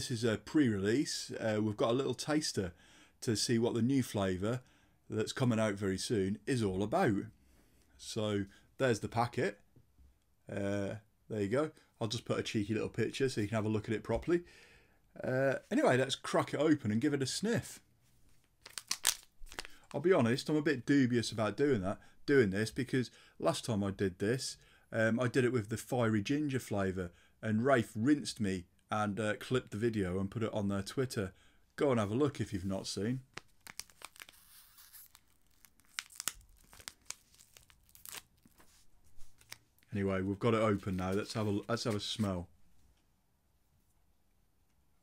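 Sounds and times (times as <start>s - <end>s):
foil sachet tearing and crinkling: 18.6s - 19.9s, 33.3s - 38.7s.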